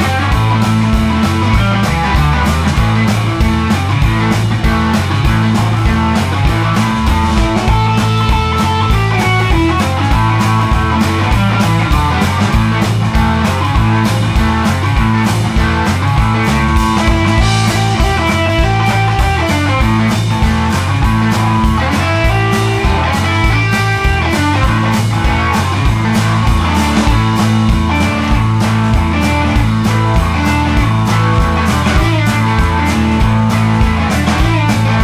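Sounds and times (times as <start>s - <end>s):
rock band playing: 0.0s - 35.0s.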